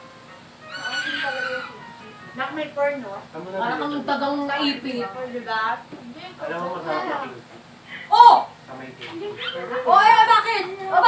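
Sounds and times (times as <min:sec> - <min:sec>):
person squealing: 0:00.7 - 0:01.8.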